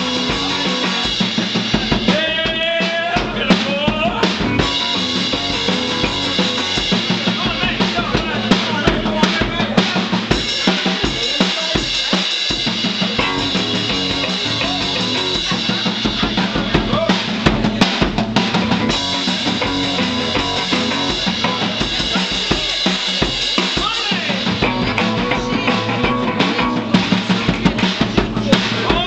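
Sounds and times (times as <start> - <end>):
strummed electric guitar: 0.0 - 10.8, 12.7 - 29.0
drum kit beat: 0.0 - 29.0
rockabilly band playing: 0.0 - 29.0.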